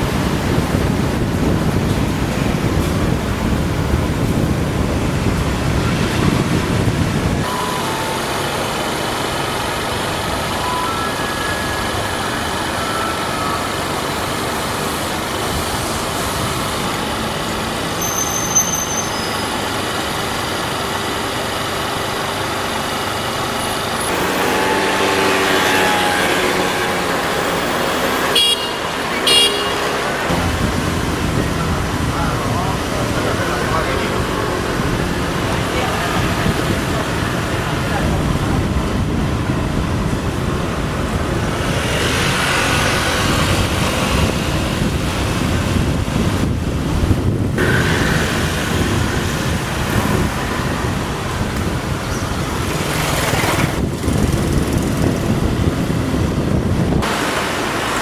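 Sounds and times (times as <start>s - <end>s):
background traffic: 0.0s - 58.0s
heavy low rumble of vehicles: 0.0s - 58.0s
short high-pitched tones: 7.4s - 8.9s, 10.5s - 14.0s.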